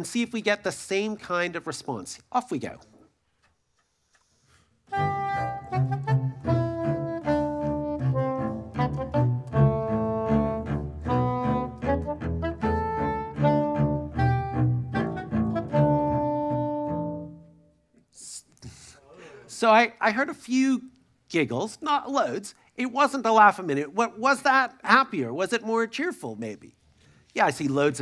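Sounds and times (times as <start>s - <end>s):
classical duo playing staccato: 4.9s - 17.5s.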